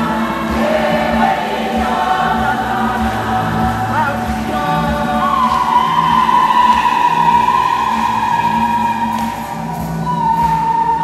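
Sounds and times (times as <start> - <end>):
women's choir singing: 0.0 - 10.9.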